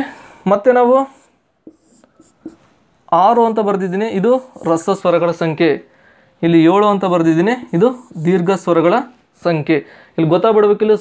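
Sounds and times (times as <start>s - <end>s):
marker pen on whiteboard: 1.0s - 5.6s, 6.7s - 9.1s.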